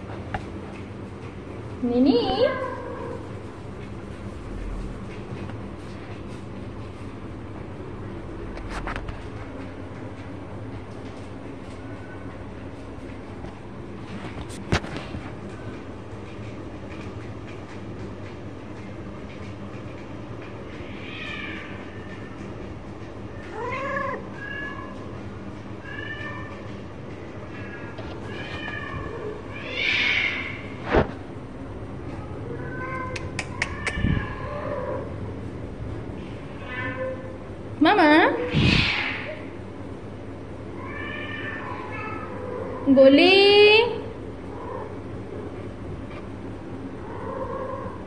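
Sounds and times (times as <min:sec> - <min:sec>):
low hum: 0:02.7 - 0:13.9
cats meowing: 0:20.7 - 0:22.5, 0:23.3 - 0:25.2, 0:25.8 - 0:26.8, 0:27.4 - 0:30.8, 0:32.1 - 0:35.2, 0:36.4 - 0:37.4, 0:38.4 - 0:39.5, 0:40.7 - 0:42.9.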